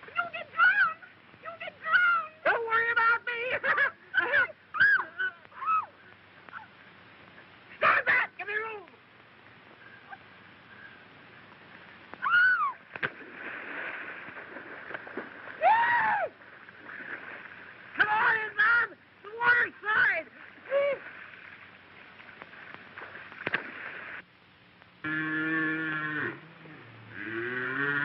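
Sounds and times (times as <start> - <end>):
voices shouting wordless calls: 7.7 - 8.9, 18.0 - 21.1.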